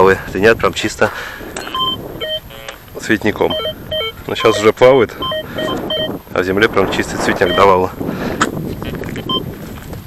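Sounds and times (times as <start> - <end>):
wind buffeting microphone: 0.0 - 10.0
faint electronic beep: 1.6 - 2.7, 3.5 - 6.2, 7.4 - 7.8.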